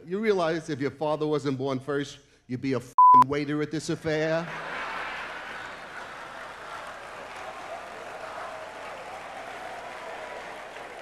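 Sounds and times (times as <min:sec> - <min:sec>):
crowd laughing: 0:04.3 - 0:11.0
audience clapping: 0:04.5 - 0:11.0.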